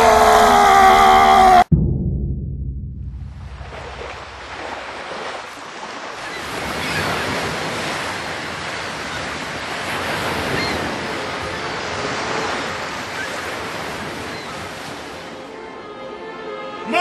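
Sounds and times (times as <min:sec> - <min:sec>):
ocean waves washing: 0:01.7 - 0:15.8.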